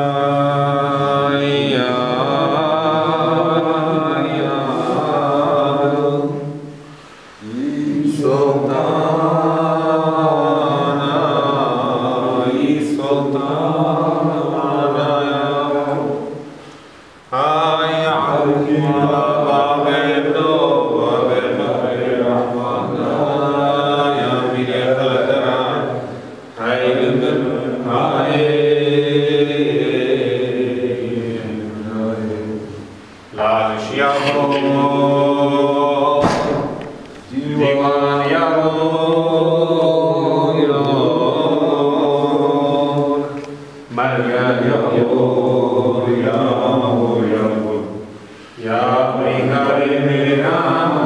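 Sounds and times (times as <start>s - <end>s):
man chanting a hymn: 0.0s - 16.5s, 17.2s - 51.0s
man chanting: 33.3s - 36.6s.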